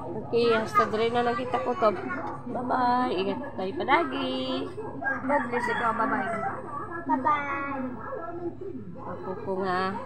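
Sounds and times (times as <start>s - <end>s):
rooster crowing: 5.0s - 6.6s.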